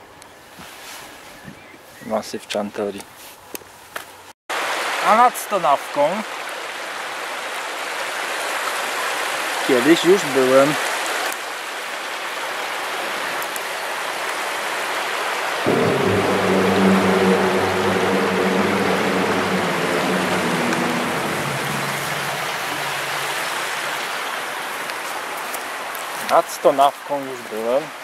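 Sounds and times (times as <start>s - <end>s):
low steady hum: 15.7s - 24.0s.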